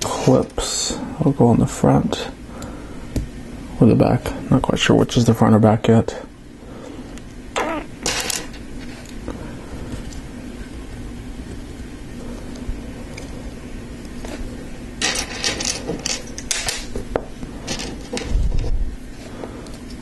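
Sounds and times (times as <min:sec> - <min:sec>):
plastic pieces clicking and clattering: 0:15.0 - 0:16.9, 0:17.7 - 0:18.4.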